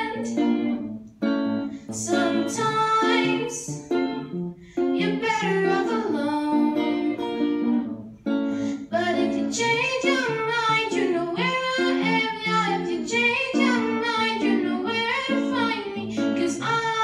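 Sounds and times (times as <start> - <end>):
girl singing pop song: 0.0 - 0.9, 1.8 - 7.9, 8.5 - 17.0.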